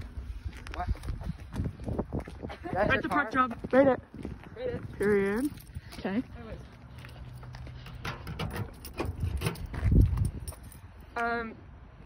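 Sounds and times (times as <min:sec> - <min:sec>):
footsteps on gritty asphalt: 0:00.0 - 0:10.9.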